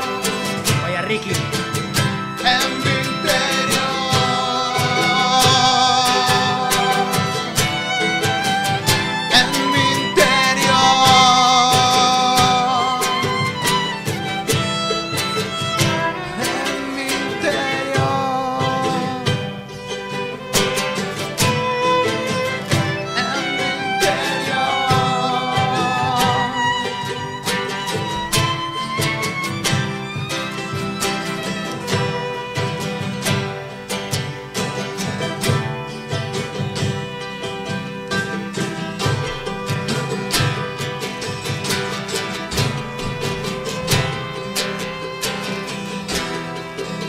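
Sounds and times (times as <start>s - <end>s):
acoustic guitar strumming: 0.0s - 47.0s
violin melody: 0.0s - 47.0s.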